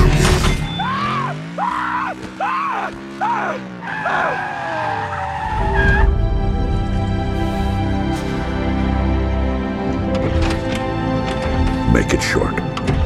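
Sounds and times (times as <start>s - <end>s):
squealing sweeps rising and falling: 3.8s - 6.2s
sustained music drone: 5.4s - 13.0s.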